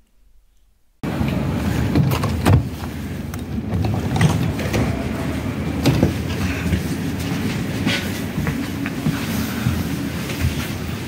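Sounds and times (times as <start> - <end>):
train carriage rumble: 1.0 - 11.0.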